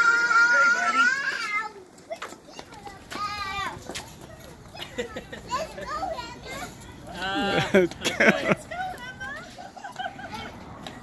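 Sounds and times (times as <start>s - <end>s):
light footsteps on concrete: 0.8s - 11.0s.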